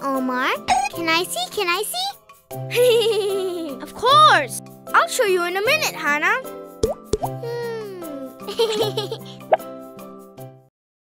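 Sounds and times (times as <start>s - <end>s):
cartoon music: 6.8s - 9.7s.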